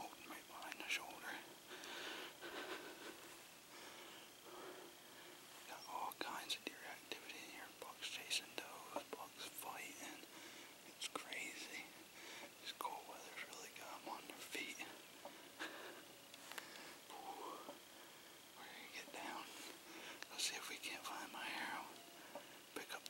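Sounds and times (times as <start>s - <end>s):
man whispering: 0.0s - 1.7s, 5.6s - 15.1s, 17.1s - 17.9s, 18.5s - 22.0s, 22.7s - 23.0s.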